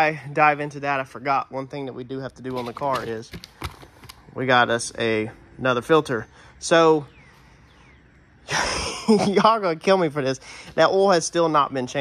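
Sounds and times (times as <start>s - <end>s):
man's sharp breath: 10.4s - 10.8s.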